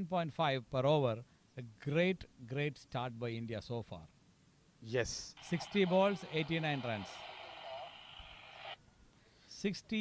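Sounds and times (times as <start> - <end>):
microphone line hiss: 3.4 - 10.0.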